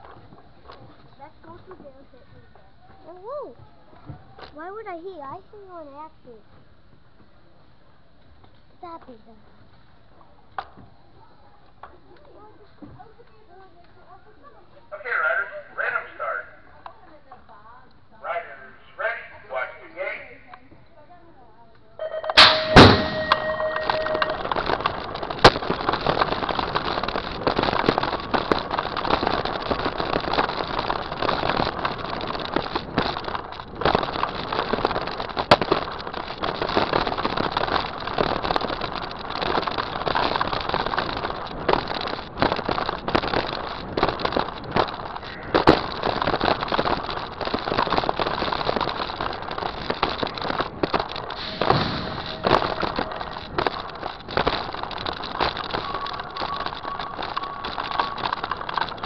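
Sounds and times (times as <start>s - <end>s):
bike knocking over dirt track: 22.1s - 59.0s
short steady tone: 22.4s - 24.5s
rushing noise: 22.4s - 59.0s.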